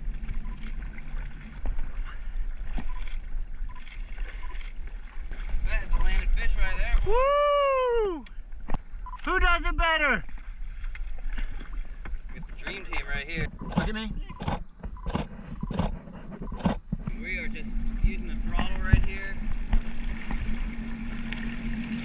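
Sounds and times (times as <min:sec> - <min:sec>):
water sloshing against hull: 0:00.0 - 0:22.0
jet ski engine idling: 0:17.1 - 0:22.0.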